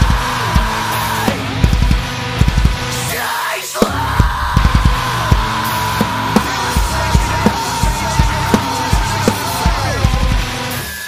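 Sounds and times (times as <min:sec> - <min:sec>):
drum kit playing: 0:00.0 - 0:03.2, 0:03.8 - 0:11.0
heavy metal song recording: 0:00.0 - 0:11.0.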